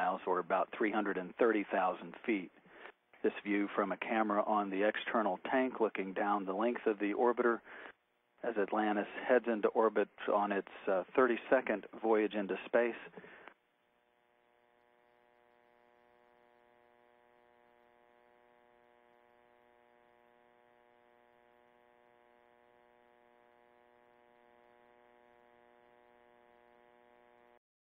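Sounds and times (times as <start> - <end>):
faint electrical buzz: 0.0 - 27.6.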